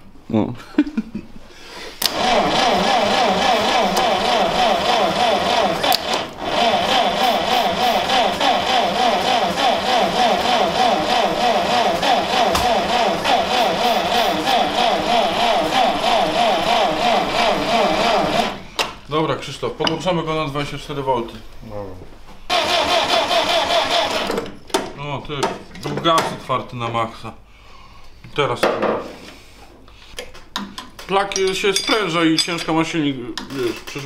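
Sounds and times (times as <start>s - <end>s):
starter motor cranking: 2.0s - 18.7s, 22.5s - 24.6s.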